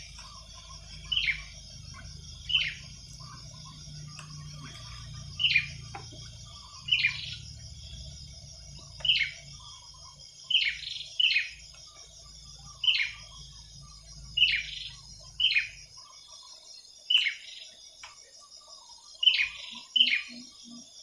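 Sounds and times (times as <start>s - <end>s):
bird chirping: 0.0s - 21.0s.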